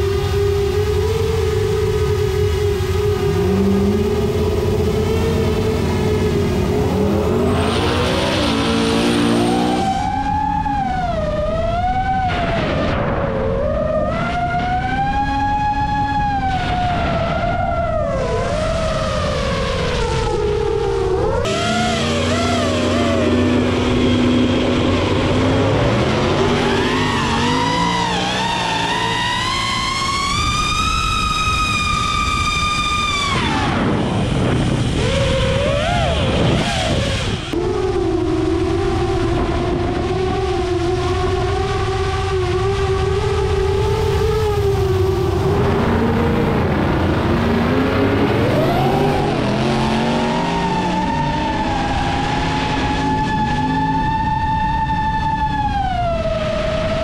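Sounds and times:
drone propellers whining: 0.0s - 57.0s.

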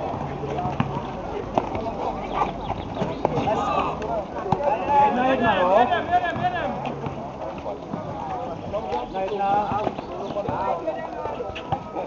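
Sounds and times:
basketball bouncing on asphalt: 0.0s - 2.0s, 5.4s - 12.0s.

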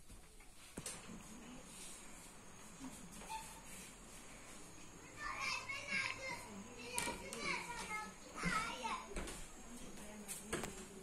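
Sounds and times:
children calling and chattering: 2.6s - 11.0s.

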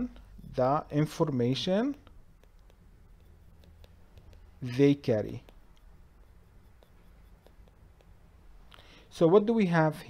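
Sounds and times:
stylus tapping on tablet screen: 2.0s - 8.5s.

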